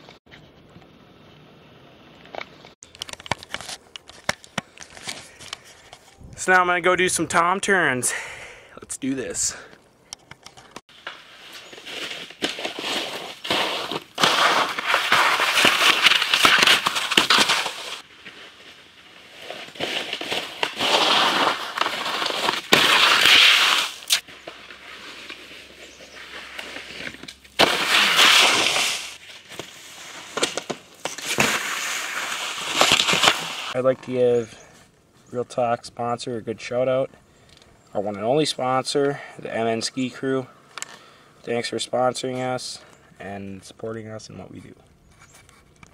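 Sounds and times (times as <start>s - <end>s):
crackling clicks and knocks: 2.2s - 6.2s
skis scraping over snow: 11.2s - 33.8s.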